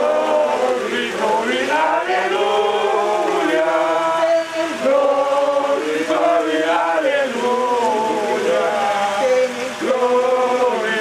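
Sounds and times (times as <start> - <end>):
group of voices singing: 0.0 - 11.0.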